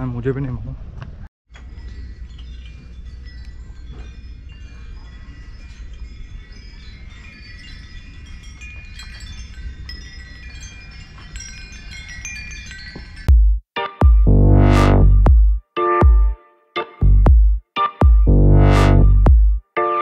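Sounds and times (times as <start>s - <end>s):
wind chimes ringing: 1.5s - 13.3s.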